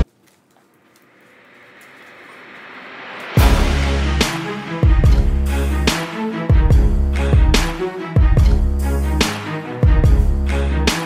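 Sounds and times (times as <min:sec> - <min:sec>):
whooshing noise: 0:01.3 - 0:06.2.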